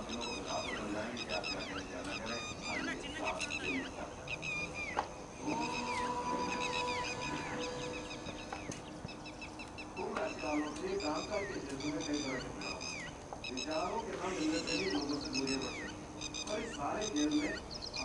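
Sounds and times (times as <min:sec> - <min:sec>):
murmur of voices: 0:00.0 - 0:09.0
birds chirping: 0:00.0 - 0:18.0.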